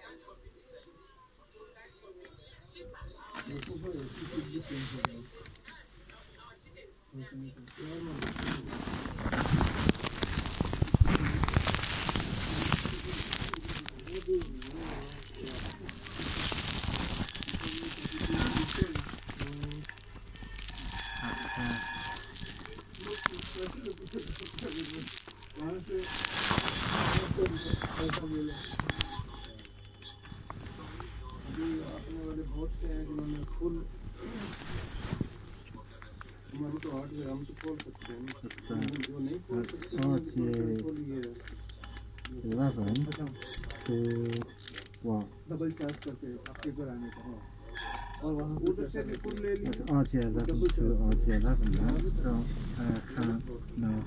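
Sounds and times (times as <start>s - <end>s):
muffled voices: 0.0s - 54.0s
rustling handling noise: 7.7s - 54.0s.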